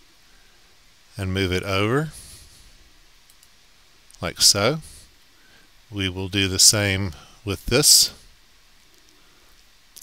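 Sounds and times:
faint computer mouse clicks: 3.2s - 3.6s.

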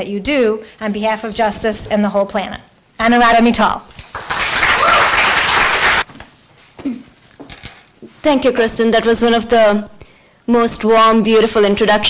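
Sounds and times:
audience applauding: 4.1s - 6.1s.

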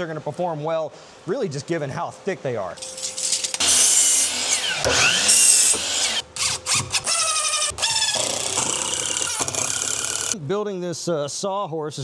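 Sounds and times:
miter saw cutting wood: 3.6s - 10.4s.

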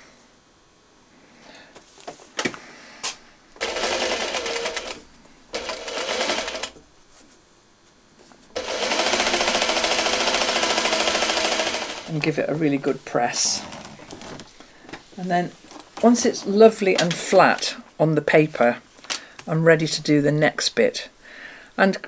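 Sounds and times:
sewing machine stitching: 3.6s - 5.0s, 5.6s - 6.8s, 8.6s - 12.1s.

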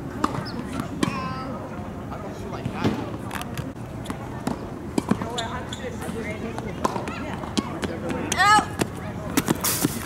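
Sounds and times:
tennis ball bouncing on hard court: 0.2s - 1.3s, 4.0s - 9.6s.

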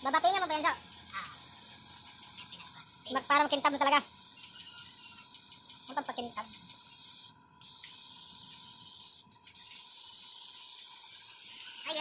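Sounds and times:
paint spray gun hissing: 0.0s - 12.0s.

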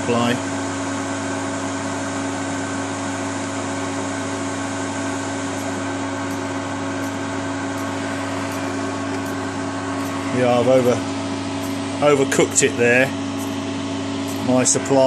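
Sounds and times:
cooling fans whirring: 0.0s - 15.0s
electrical hum: 0.0s - 15.0s.

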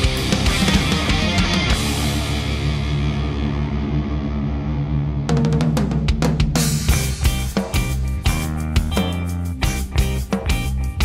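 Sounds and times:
rapid drum hits: 0.0s - 2.8s, 5.3s - 10.8s.

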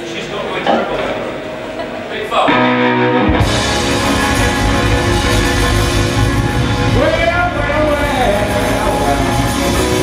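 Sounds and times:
blues band playing loudly: 2.5s - 10.0s
electric guitar notes: 2.5s - 10.0s.

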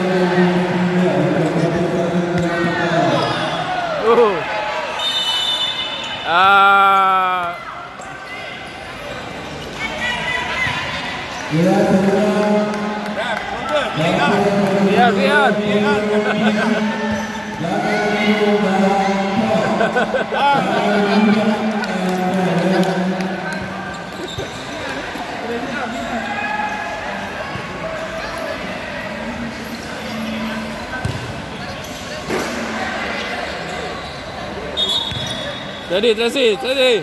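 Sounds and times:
spectators chattering: 0.0s - 37.0s.

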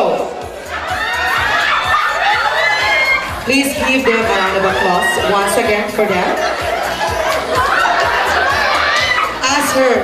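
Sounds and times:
crowd cheering and shouting: 0.0s - 10.0s.

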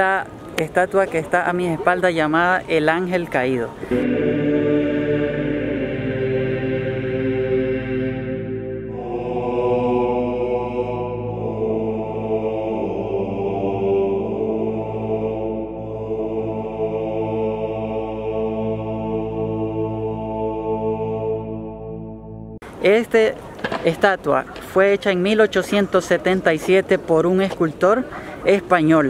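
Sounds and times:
voices chanting long notes: 3.9s - 22.6s.

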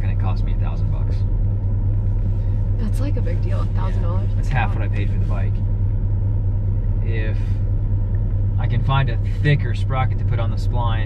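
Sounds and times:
road noise: 0.0s - 11.0s
truck engine drone: 0.0s - 11.0s.

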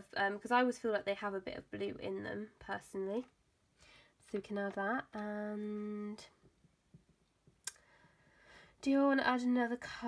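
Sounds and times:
woman speaking: 0.0s - 3.3s, 4.2s - 6.4s, 8.8s - 10.0s.

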